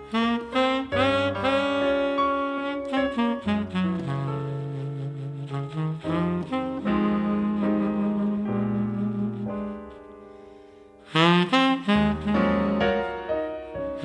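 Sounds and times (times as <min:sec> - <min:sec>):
double bass line: 0:00.0 - 0:10.0, 0:11.2 - 0:13.4
tenor saxophone melody: 0:00.0 - 0:14.0.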